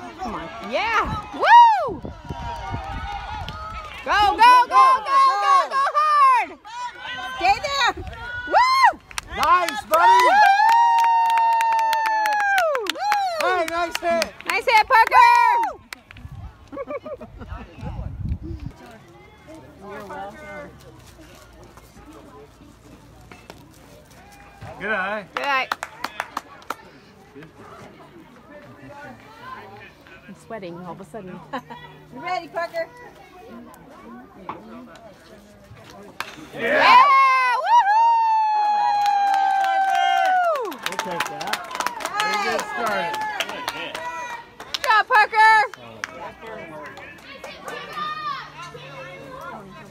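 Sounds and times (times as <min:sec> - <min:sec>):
distant voices chattering: 0:40.8 - 0:49.9.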